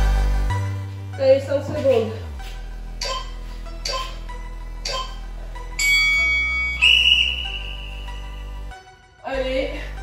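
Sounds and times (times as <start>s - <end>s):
background music with soft beat: 0.0s - 10.0s
interval timer tone: 3.0s - 8.6s.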